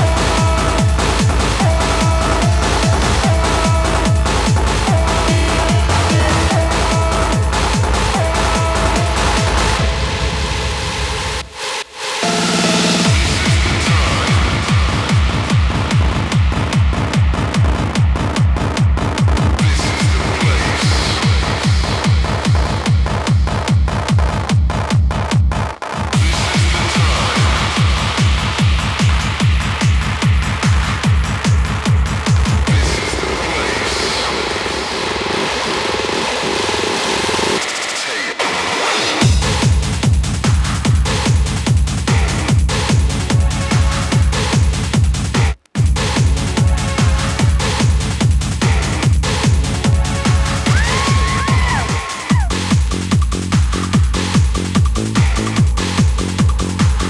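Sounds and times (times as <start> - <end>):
rushing white-noise sweep: 0.0 - 16.8
hard trance dance music: 0.0 - 57.0.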